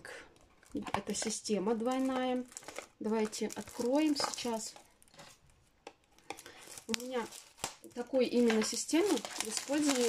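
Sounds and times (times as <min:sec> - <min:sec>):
packaging clicks and rustles: 0:00.3 - 0:10.0.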